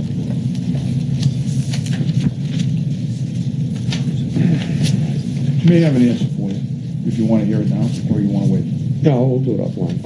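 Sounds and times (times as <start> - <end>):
low room rumble: 0.0 - 10.0
paper rustling and clicks: 0.4 - 2.8.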